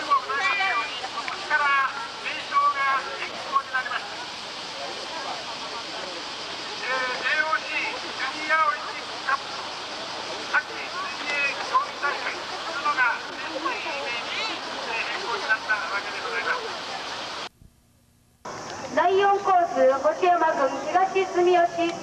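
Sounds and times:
steady hiss: 0.0s - 22.0s.

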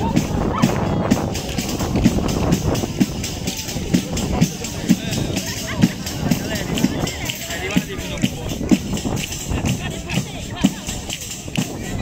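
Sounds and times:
frame drum with jingles: 0.0s - 12.0s.

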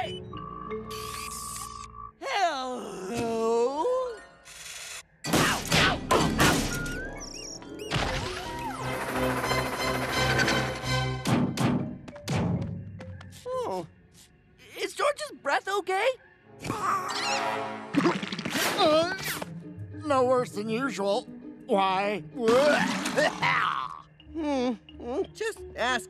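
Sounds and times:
background music: 0.0s - 4.6s, 5.2s - 14.2s, 14.8s - 26.0s
cartoon whacks and thumps: 5.3s - 6.9s.

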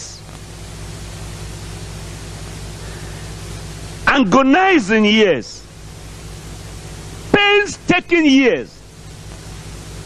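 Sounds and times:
low electrical hum: 0.0s - 10.0s
steady hiss: 0.0s - 10.0s.

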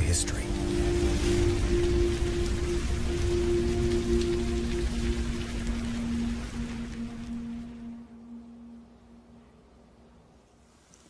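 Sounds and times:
low rumble: 0.0s - 9.7s
music of long low notes: 0.0s - 10.7s.

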